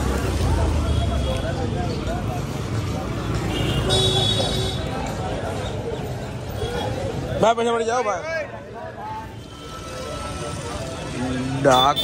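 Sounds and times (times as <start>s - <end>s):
people talking: 0.0s - 12.0s
vehicle traffic rumble: 0.0s - 12.0s.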